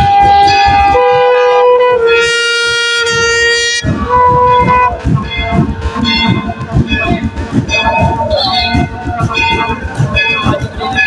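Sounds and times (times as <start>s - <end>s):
drum strokes: 0.0s - 11.0s
held wind instrument notes: 0.0s - 11.0s.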